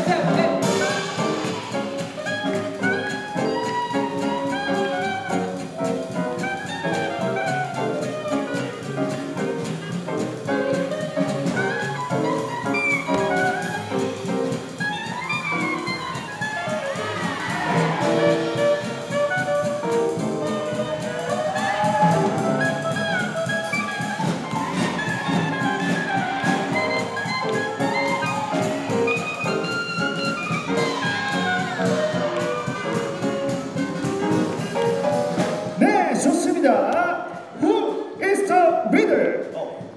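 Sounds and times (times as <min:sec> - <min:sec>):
swing big band playing jazz: 0:00.0 - 0:39.9.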